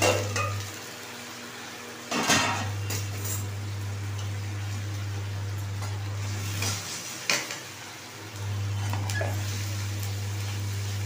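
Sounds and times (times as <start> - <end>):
faint frying: 0.0 - 11.0
steady low hum: 2.5 - 6.9, 8.3 - 11.0.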